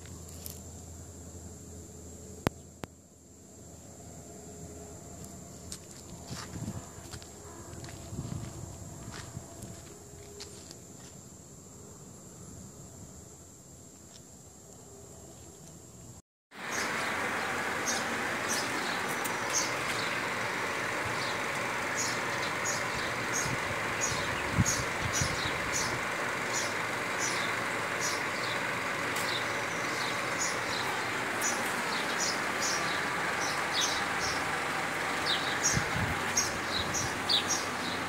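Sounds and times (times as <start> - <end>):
small birds chirping: 16.6 - 38.0.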